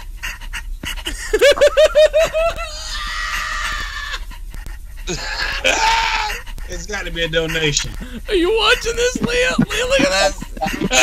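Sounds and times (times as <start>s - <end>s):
man laughing hysterically: 1.0s - 4.2s, 5.1s - 11.0s.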